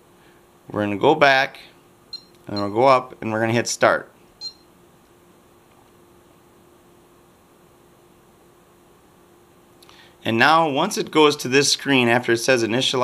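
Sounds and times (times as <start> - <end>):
steady low hum: 0.0 - 13.0
short electronic beep: 4.4 - 4.7.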